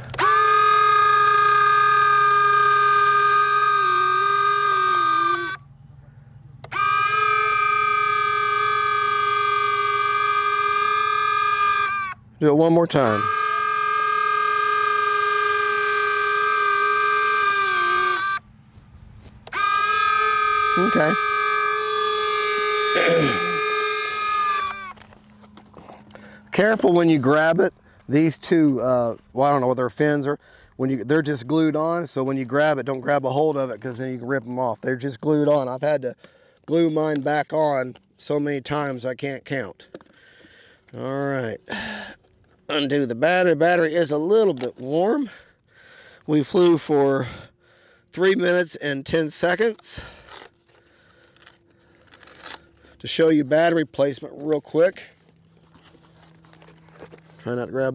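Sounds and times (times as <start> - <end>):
electric model jet whine: 0.0 - 5.7, 6.6 - 28.8, 48.1 - 57.9
battery compartment scraping and rustling: 55.1 - 57.8.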